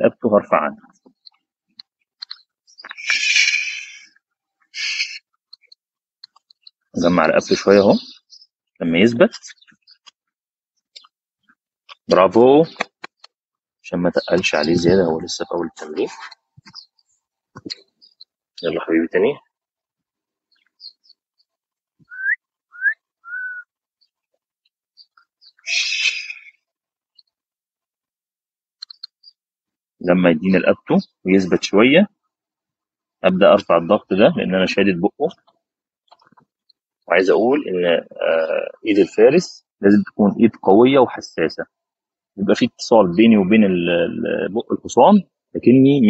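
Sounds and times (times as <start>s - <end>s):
person whistling: 22.1s - 23.7s.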